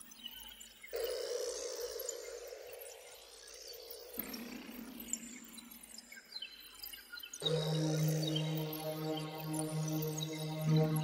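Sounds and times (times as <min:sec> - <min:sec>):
sustained synth pad: 0:07.4 - 0:11.0.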